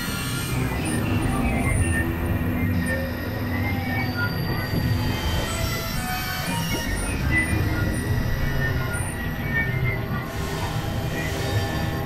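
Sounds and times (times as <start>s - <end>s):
low rumbling electronic drone: 0.0s - 12.0s.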